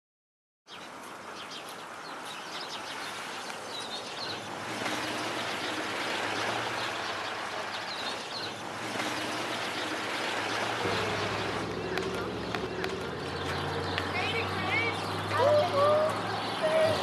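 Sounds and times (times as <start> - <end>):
bird chirping: 0.7 - 17.0
street background noise: 0.7 - 17.0.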